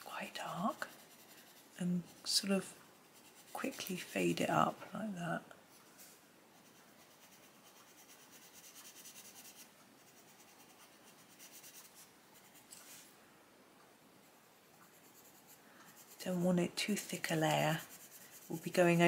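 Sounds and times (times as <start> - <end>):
pencil scratching on paper: 0.2 - 4.8, 6.6 - 13.0, 14.5 - 19.0.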